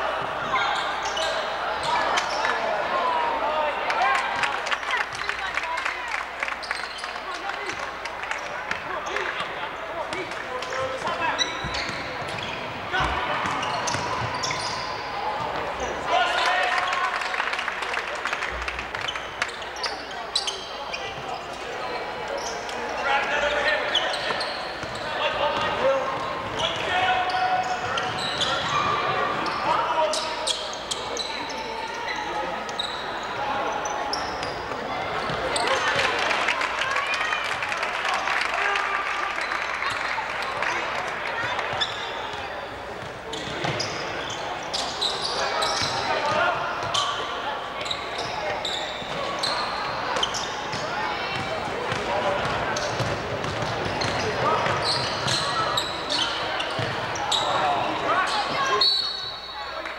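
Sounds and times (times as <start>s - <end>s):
basketball bouncing on court: 11.5s - 14.6s, 50.2s - 55.5s, 56.6s - 57.1s.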